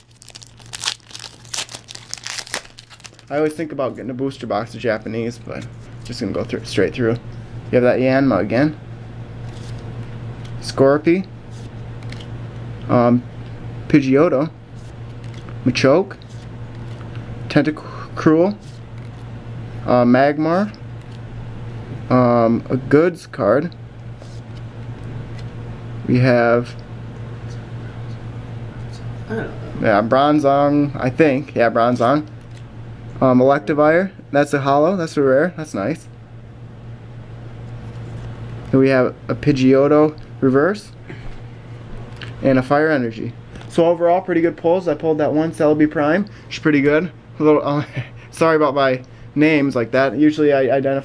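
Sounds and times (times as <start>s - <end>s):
foil wrapper crinkling: 0.0s - 3.5s
trading cards clicking: 0.2s - 3.3s.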